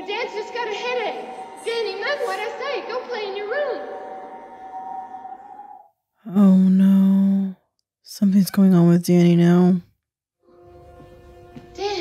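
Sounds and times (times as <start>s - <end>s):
woman speaking: 0.0s - 4.1s
droning held score tones: 0.0s - 5.9s.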